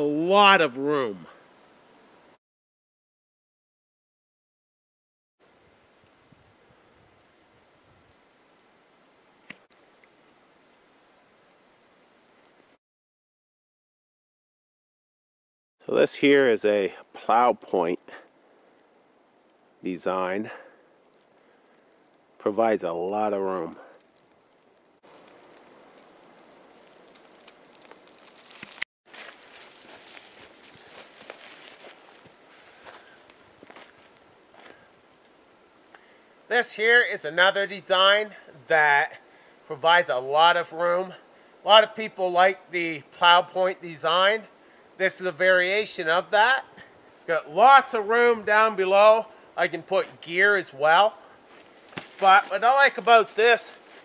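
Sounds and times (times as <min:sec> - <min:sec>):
faint steady hiss: 0:00.0 - 0:02.4, 0:05.4 - 0:12.8, 0:15.8 - 0:54.0
crunching in dry leaf litter: 0:24.0 - 0:35.3, 0:49.7 - 0:54.0.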